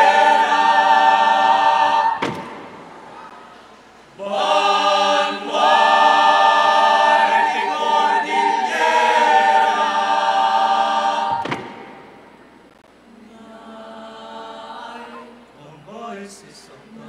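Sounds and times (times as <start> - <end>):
choir singing a cappella: 0.0 - 2.4, 4.1 - 12.0, 13.1 - 17.0.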